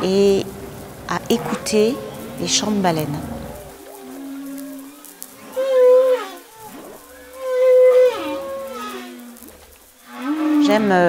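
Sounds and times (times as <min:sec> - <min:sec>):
whale song: 0:03.3 - 0:11.0.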